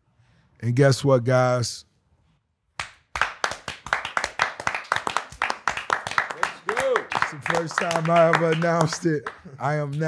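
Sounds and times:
people clapping: 2.8s - 10.0s.

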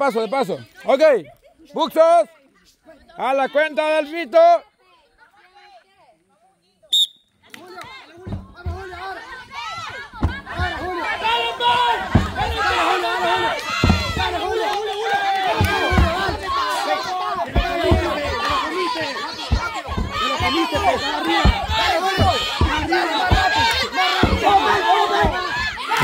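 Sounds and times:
whistle blast: 6.9s - 7.4s
crowd shouting and cheering: 7.5s - 26.0s
heavy tyres thudding on dirt: 8.2s - 26.0s.

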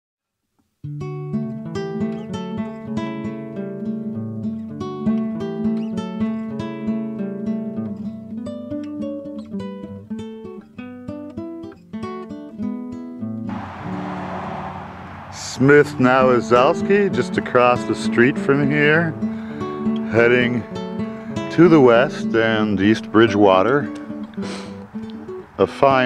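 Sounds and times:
acoustic guitar music: 0.8s - 14.0s, 14.8s - 26.0s.

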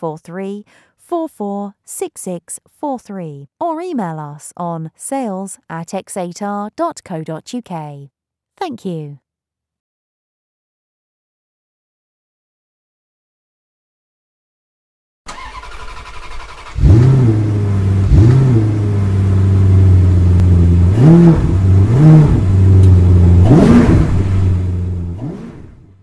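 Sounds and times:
car engine revving: 15.3s - 26.0s.

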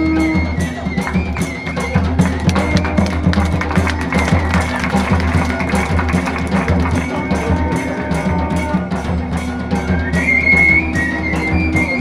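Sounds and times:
drums beating fast: 0.0s - 12.0s.

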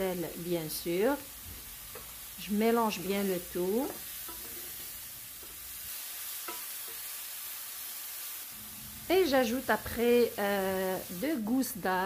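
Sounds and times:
mushrooms sizzling in oil: 0.0s - 12.0s
spatula scraping pan: 3.9s - 5.7s.

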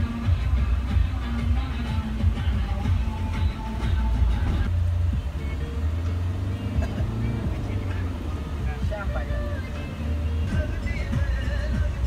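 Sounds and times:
engine and road rumble: 0.0s - 12.0s
music: 0.0s - 12.0s
voices: 0.1s - 12.0s.

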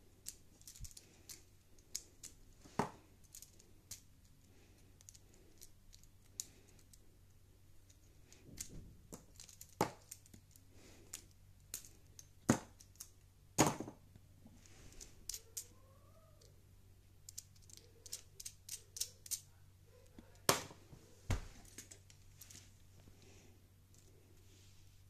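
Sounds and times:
plastic parts clicking: 0.2s - 4.1s, 7.8s - 13.1s, 17.3s - 19.4s.

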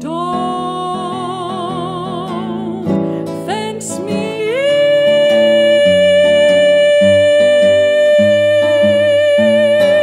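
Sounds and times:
classical guitar plucking: 0.0s - 10.0s.

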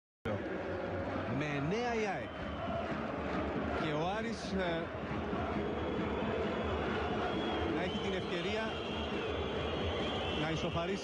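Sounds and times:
stadium crowd noise: 0.3s - 11.0s.

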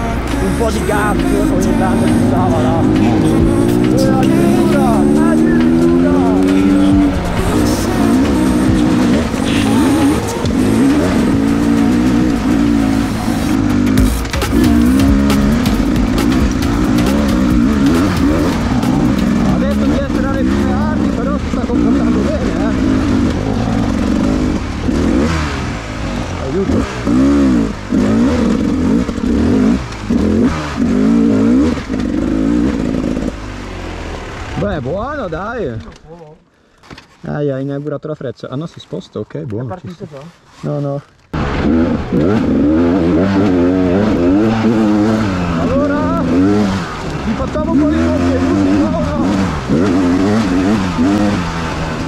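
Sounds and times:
dirt bike engine revving: 0.0s - 35.6s, 41.3s - 52.0s
knocks and rattles: 13.6s - 21.8s.

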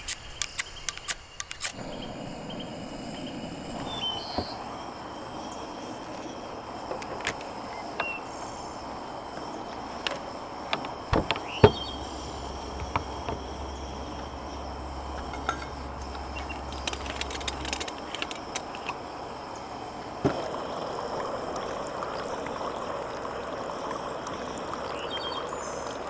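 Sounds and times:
outdoor hiss: 0.0s - 26.0s
faint high buzz: 1.3s - 26.0s
low hum: 1.8s - 24.8s
moka pot and stove clicks: 9.3s - 19.1s, 20.2s - 22.7s.

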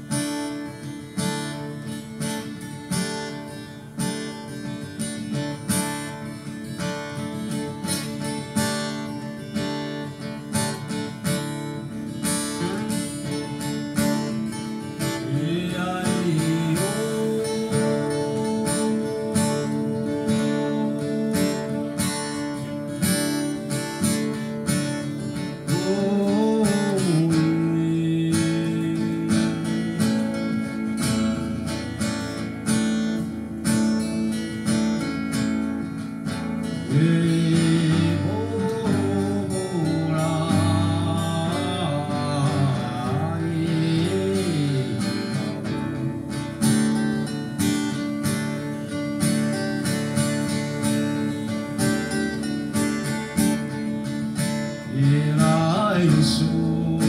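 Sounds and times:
acoustic guitars strummed and picked: 0.0s - 57.0s
person singing long held notes: 15.1s - 23.4s, 36.9s - 46.3s.

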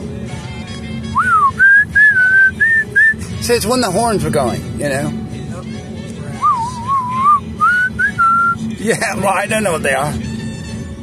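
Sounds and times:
person whistling a tune: 1.1s - 3.2s, 6.4s - 8.6s.

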